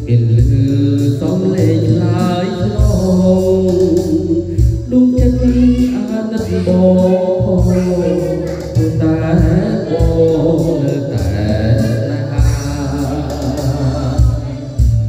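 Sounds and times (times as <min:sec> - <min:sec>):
backing track with bass notes: 0:00.0 - 0:15.0
man singing into a microphone: 0:00.0 - 0:15.0.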